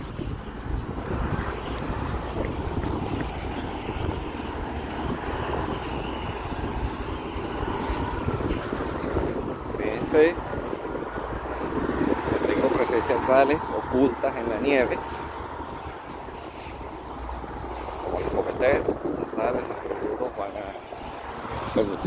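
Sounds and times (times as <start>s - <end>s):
road traffic: 0.0s - 22.0s
wind rumble on microphone: 0.0s - 22.0s.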